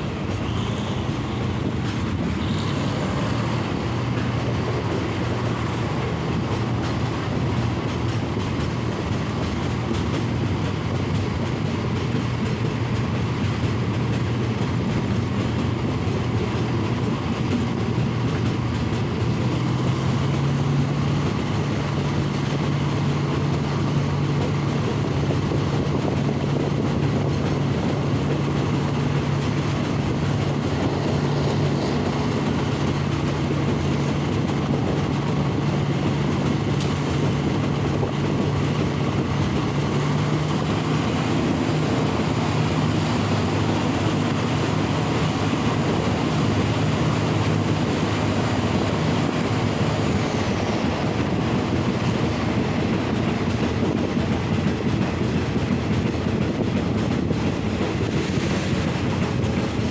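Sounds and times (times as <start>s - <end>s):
train rumble and rail noise: 0.0s - 59.9s.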